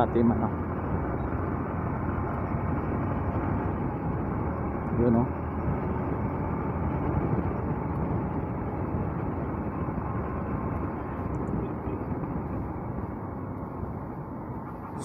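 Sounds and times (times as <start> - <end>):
motorcycle road noise: 0.0 - 15.0
wind rushing over microphone: 0.0 - 15.0.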